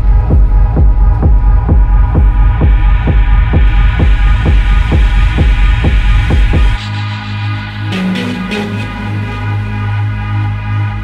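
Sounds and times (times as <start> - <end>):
techno kick drum: 0.0 - 6.9
droning synth chord: 6.8 - 11.0.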